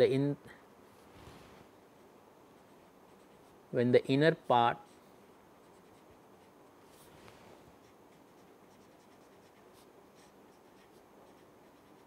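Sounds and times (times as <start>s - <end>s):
marker pen scratching on paper: 5.6s - 7.1s, 7.7s - 12.0s.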